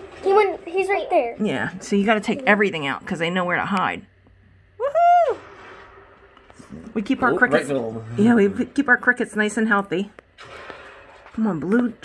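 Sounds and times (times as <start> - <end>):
person saying ooh: 4.8 - 5.4.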